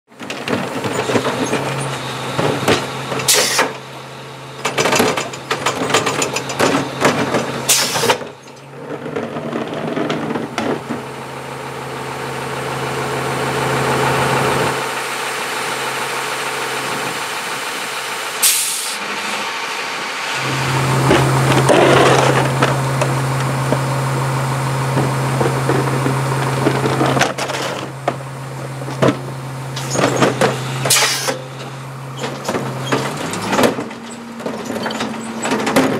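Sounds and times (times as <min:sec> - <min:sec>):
garbage truck engine hum: 0:00.1 - 0:35.9
metal clanks and bangs: 0:28.8 - 0:35.9.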